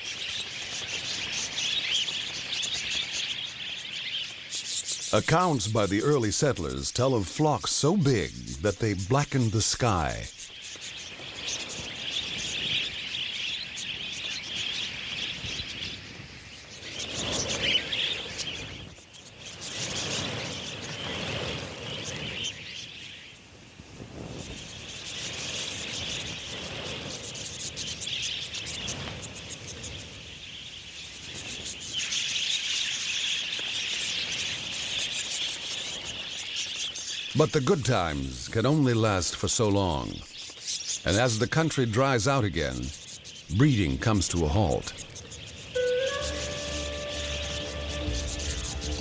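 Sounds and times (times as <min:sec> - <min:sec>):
budgerigars chattering: 0:31.2 - 0:49.0.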